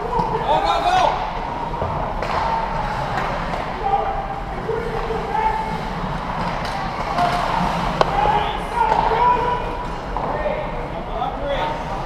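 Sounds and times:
puck impact crack: 0:01.7 - 0:03.7, 0:06.0 - 0:09.2.

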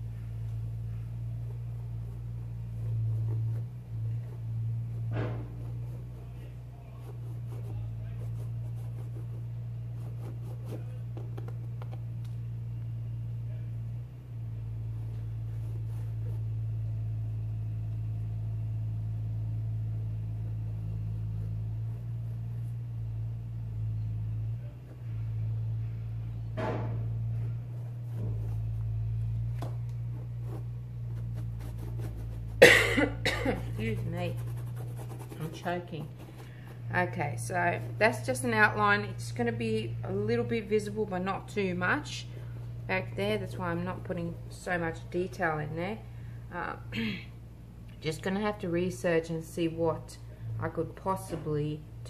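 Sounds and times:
low hum: 0:00.0 - 0:52.0
woman coughing: 0:32.6 - 0:33.8.

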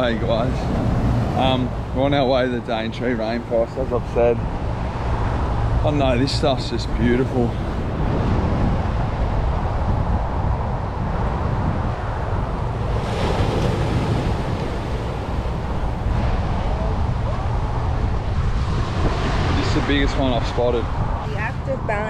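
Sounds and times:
wind buffeting microphone: 0:00.0 - 0:22.0
small waves breaking on sand: 0:06.9 - 0:21.3.

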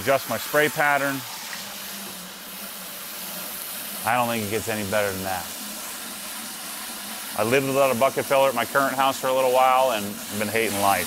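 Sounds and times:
water spraying into bucket: 0:00.0 - 0:11.0.

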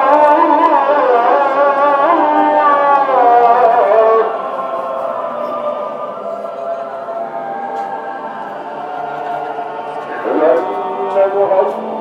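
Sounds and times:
choir-like droning tones: 0:00.0 - 0:12.0.

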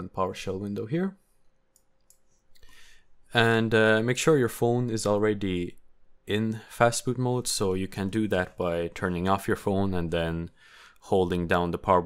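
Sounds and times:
soft breath: 0:02.3 - 0:03.3, 0:10.6 - 0:11.0.

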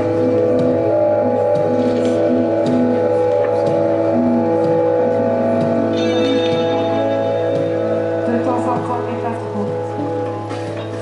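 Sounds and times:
layered drone tones: 0:00.0 - 0:11.0.

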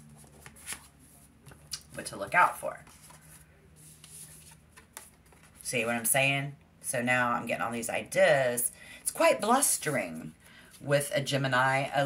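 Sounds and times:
cards rustling and sliding: 0:00.0 - 0:01.6, 0:02.8 - 0:05.6.

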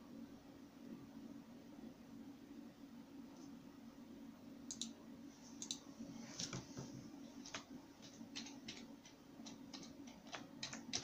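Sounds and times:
low steady hum: 0:00.0 - 0:11.0
keyboard and mouse clicks: 0:04.7 - 0:05.0, 0:05.6 - 0:05.8, 0:07.4 - 0:11.0.

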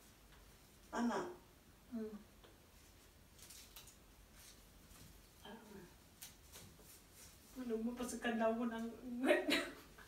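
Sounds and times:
faint rustles: 0:02.5 - 0:09.0.

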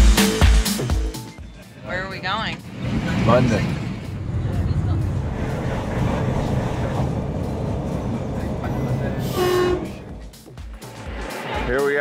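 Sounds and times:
train rumbling: 0:01.4 - 0:12.0.

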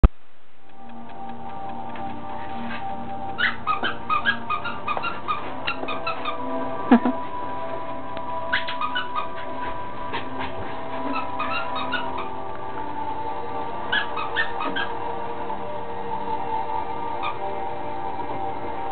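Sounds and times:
background music: 0:00.6 - 0:18.9
small dog yipping: 0:03.4 - 0:06.4, 0:08.5 - 0:09.5, 0:11.1 - 0:12.3, 0:13.9 - 0:14.9.

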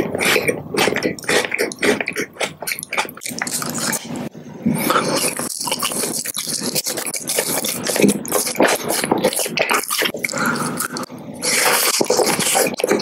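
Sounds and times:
chewing gummy candy: 0:00.0 - 0:04.2, 0:04.8 - 0:13.0.

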